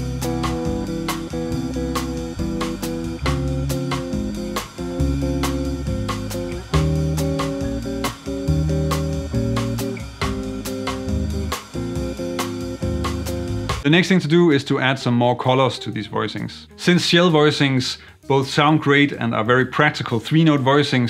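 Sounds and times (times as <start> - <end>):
electric guitar chord stabs: 0.0 - 13.9
guitar bass notes: 0.0 - 20.7.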